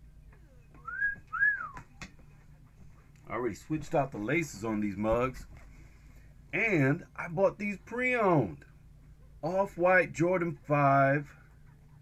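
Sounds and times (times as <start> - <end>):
man wolf whistling: 0.8 - 1.8.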